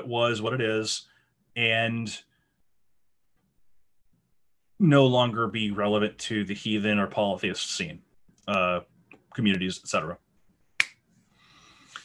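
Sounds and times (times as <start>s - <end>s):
person speaking: 4.7s - 10.3s.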